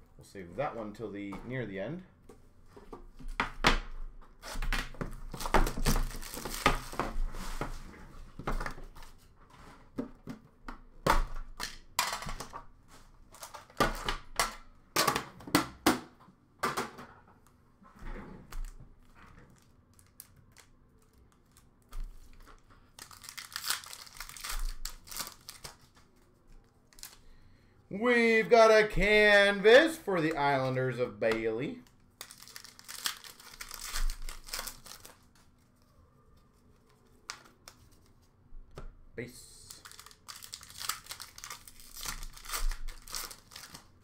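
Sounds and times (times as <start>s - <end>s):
foil wrappers tearing and crinkling: 5.3s - 7.0s, 22.9s - 26.0s, 32.1s - 35.4s, 39.7s - 44.0s
cards being handled: 29.7s - 38.3s.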